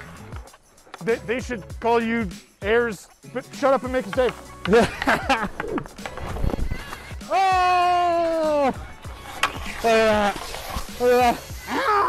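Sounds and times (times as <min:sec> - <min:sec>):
ice skate blades scraping: 0:03.4 - 0:07.2, 0:07.8 - 0:12.0
man laughing shout: 0:04.7 - 0:05.8, 0:07.2 - 0:08.8, 0:11.0 - 0:12.0.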